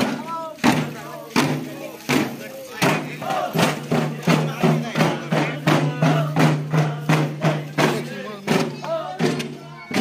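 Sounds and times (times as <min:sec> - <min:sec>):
men chanting and shouting: 0:00.0 - 0:10.0.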